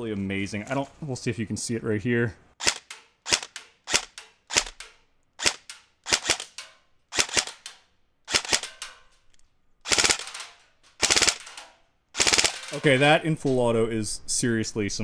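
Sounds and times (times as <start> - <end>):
rapid full-auto burst: 2.6 - 4.8, 5.4 - 7.6, 8.3 - 8.8, 9.9 - 10.4, 11.0 - 11.6, 12.2 - 12.8.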